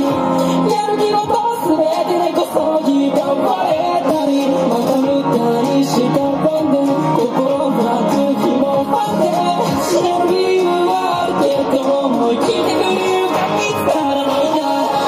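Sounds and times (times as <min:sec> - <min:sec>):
electric guitar through amp: 0:00.0 - 0:15.0
person singing: 0:00.0 - 0:15.0.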